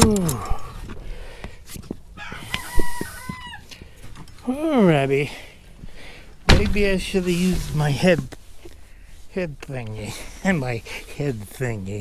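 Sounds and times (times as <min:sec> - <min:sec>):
rooster crowing: 0:02.2 - 0:03.7
wooden door and bolt clicks: 0:06.5 - 0:06.9.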